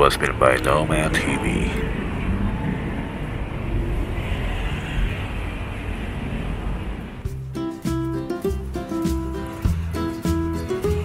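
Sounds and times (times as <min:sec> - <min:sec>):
cars and scooters passing: 0:00.0 - 0:07.3.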